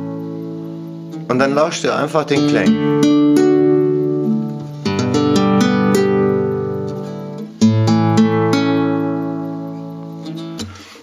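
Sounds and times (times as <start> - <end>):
classical guitar chords picked: 0.0 - 11.0.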